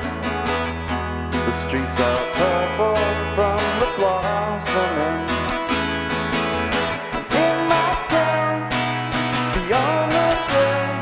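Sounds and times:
acoustic guitar strumming: 0.0 - 11.0
man singing: 1.4 - 5.6, 7.0 - 11.0.

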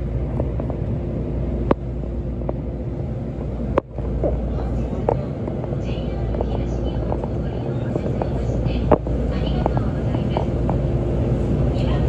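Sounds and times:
train pulling out rumble: 0.0 - 12.0.

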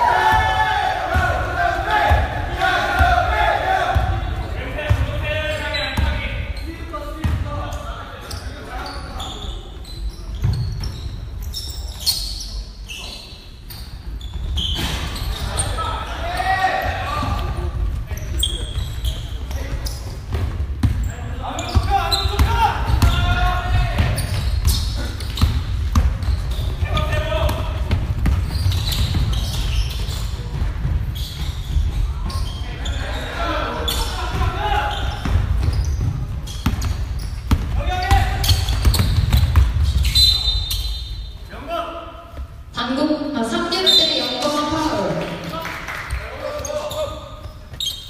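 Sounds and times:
players calling out: 0.0 - 13.4, 14.6 - 20.1, 20.8 - 42.1
basketball bouncing on gym floor: 18.6 - 32.5, 34.3 - 40.2.

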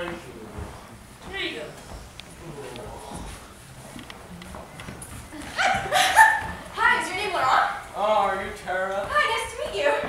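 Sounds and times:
faint murmur: 0.0 - 10.0.

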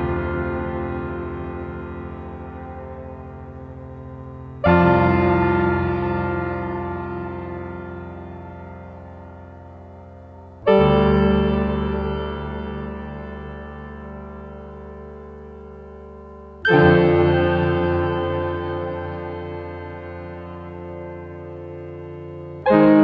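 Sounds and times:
synthesizer chord: 0.0 - 23.0.

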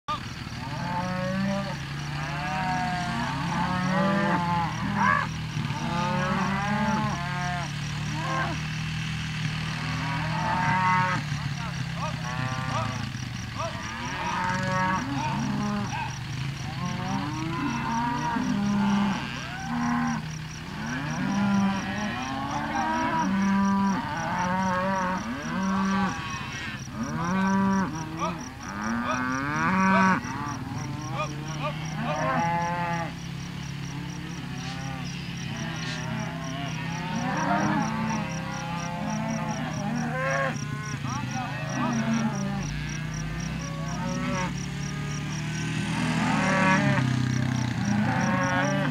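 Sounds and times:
cattle mooing: 0.1 - 48.9.

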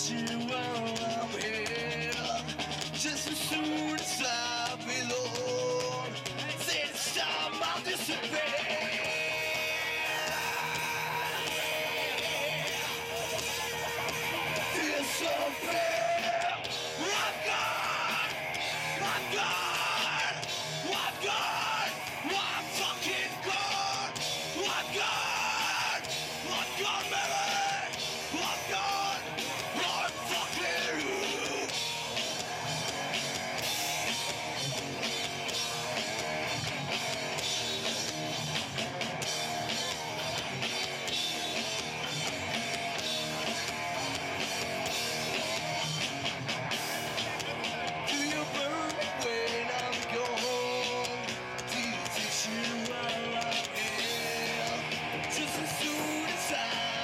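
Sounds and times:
person singing: 0.0 - 32.0, 47.0 - 57.0
live rock band playing: 0.0 - 57.0.

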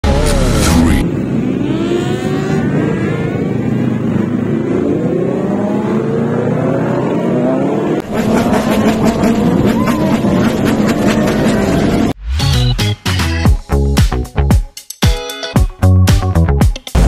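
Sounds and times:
motorcycles revving and accelerating: 0.1 - 12.2.

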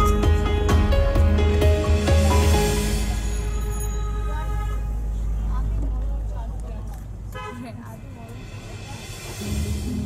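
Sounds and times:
vehicle engine rumble: 0.0 - 10.0
vehicle horn honk: 3.2 - 5.3, 7.3 - 8.2.

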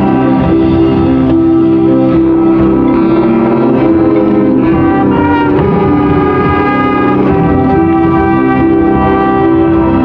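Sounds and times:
marching band playing chords: 0.0 - 10.0.

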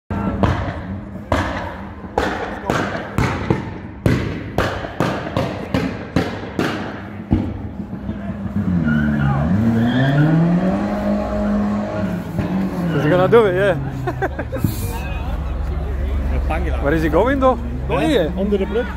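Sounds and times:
exhaust popping and banging: 0.2 - 8.9, 10.2 - 13.7
car engine revving: 6.0 - 18.9
car engine idling: 10.8 - 18.9.

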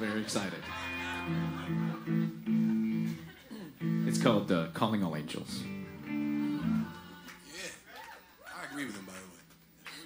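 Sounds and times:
guitar chord strummed: 3.8 - 4.4.

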